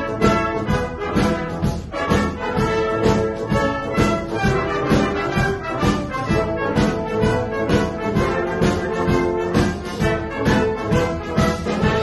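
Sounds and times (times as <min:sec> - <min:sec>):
steady drum beat: 0:00.0 - 0:12.0
wind band playing pop song: 0:00.0 - 0:12.0.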